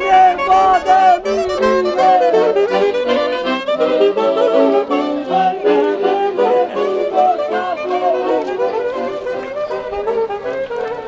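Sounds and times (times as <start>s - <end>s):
accompanying instruments: 0.0s - 11.0s
saxophone melody: 0.0s - 11.0s.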